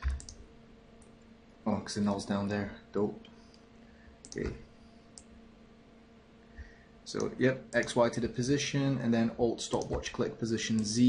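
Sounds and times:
computer mouse clicks: 0:00.0 - 0:00.4, 0:04.2 - 0:04.6, 0:09.7 - 0:10.2
faint steady hum: 0:00.0 - 0:11.0.

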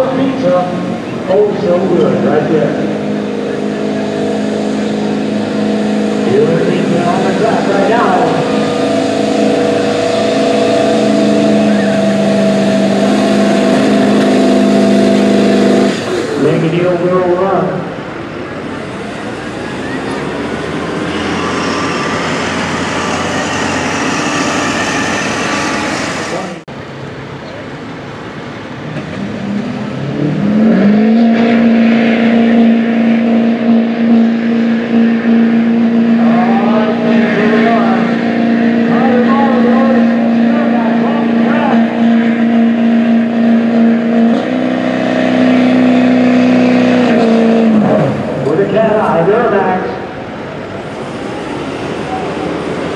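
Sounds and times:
public address voice: 0:00.0 - 0:02.8, 0:06.2 - 0:08.5, 0:16.4 - 0:17.9, 0:48.4 - 0:50.1
pickup engine at full throttle: 0:00.0 - 0:52.9
pickup engine revving: 0:00.0 - 0:52.9.

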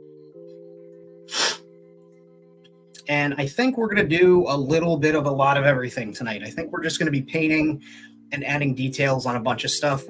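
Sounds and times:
soft music of held chords: 0:00.0 - 0:10.0
sharp puff of breath: 0:01.3 - 0:01.7.

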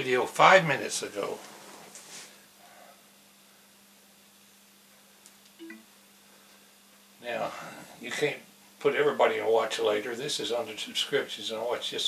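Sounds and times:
short pitched tone: 0:05.6 - 0:05.9.

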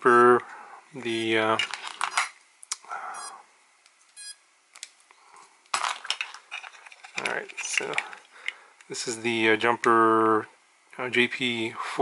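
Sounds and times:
plastic clatter: 0:05.7 - 0:08.3
plastic parts clicking and knocking: 0:05.7 - 0:08.6.

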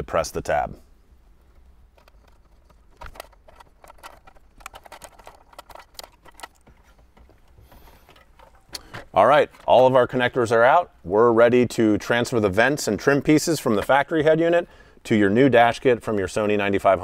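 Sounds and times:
plastic connector clicks and rattles: 0:01.9 - 0:09.7.

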